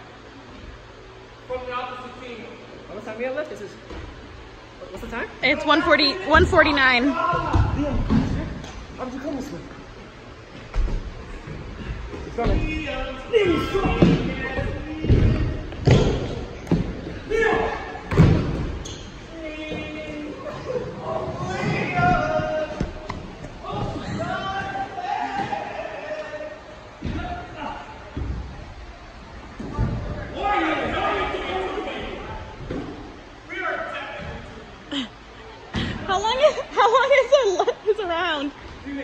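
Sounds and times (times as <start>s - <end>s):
voices calling in a hall: 0.0s - 39.0s.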